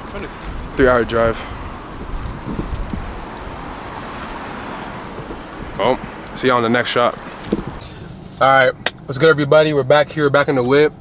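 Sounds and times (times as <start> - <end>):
wind buffeting microphone: 0.0 - 8.0
city street noise: 0.0 - 11.0.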